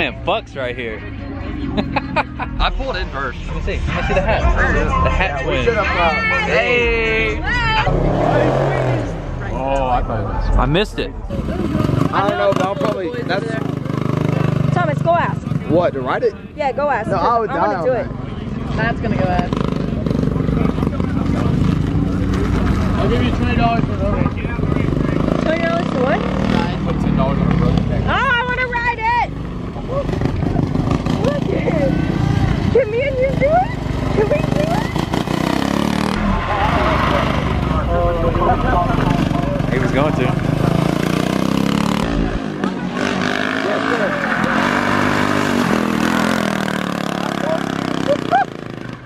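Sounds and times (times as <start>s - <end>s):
vehicle engines running: 0.0s - 49.0s.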